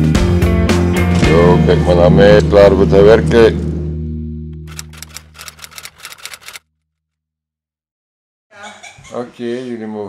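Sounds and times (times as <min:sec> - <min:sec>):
keyboard typing clicks: 0:04.7 - 0:06.6.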